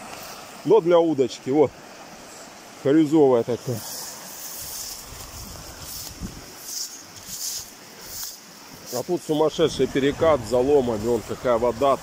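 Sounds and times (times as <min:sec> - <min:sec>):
river rushing: 0:00.0 - 0:12.0
dry grass rustling: 0:03.7 - 0:09.5
wind buffeting microphone: 0:04.5 - 0:07.4, 0:08.0 - 0:12.0.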